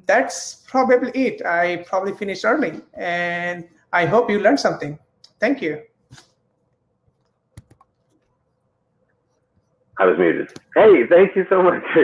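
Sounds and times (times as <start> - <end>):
computer keyboard clicks: 7.2 - 8.3.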